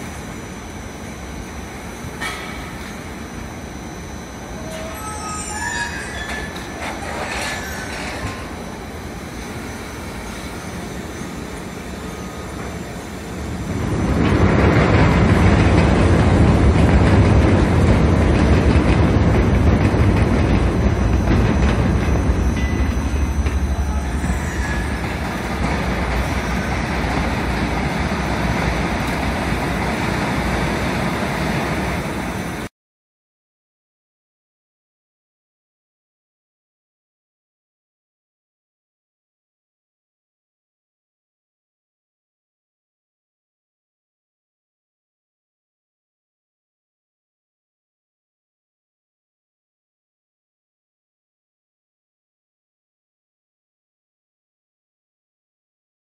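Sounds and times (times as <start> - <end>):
roller conveyors rumbling and clattering: 0.0 - 32.7
short high squeaks: 4.6 - 8.6, 22.1 - 26.9.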